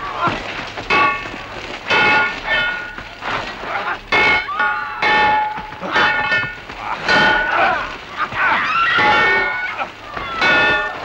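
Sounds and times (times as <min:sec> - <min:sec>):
swords clashing: 0:04.1 - 0:09.6.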